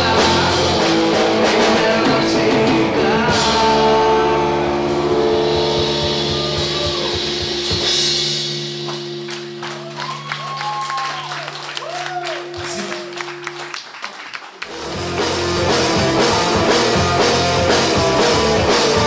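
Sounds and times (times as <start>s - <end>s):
rock band chord ringing: 0.0s - 14.1s, 14.7s - 19.0s
audience clapping and cheering: 8.8s - 15.1s.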